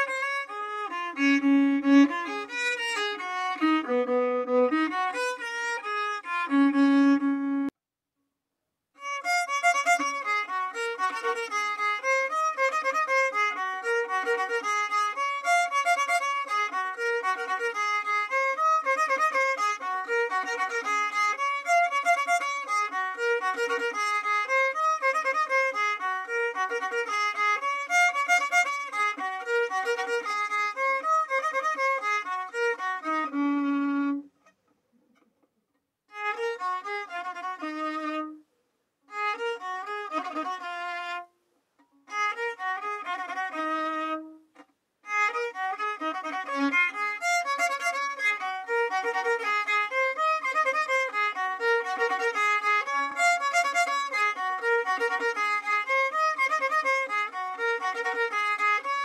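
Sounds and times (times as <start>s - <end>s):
solo violin melody: 0.0s - 7.8s, 9.0s - 34.4s, 36.1s - 38.5s, 39.1s - 59.0s.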